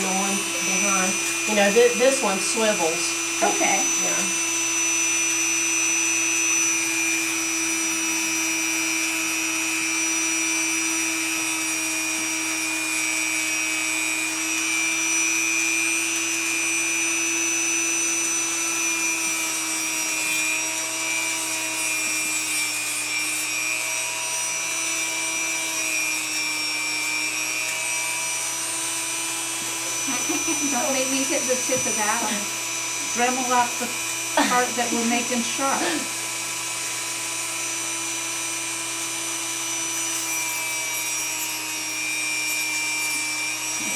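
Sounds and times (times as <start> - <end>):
rotary tool grinding whine: 0.0 - 43.9.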